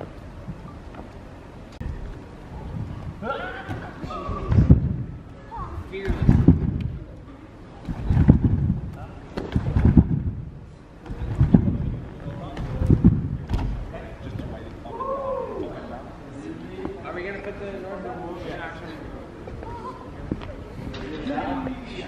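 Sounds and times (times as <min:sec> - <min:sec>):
low thumps of trampoline bouncing: 0:01.9 - 0:05.2, 0:05.8 - 0:07.2, 0:07.8 - 0:14.7.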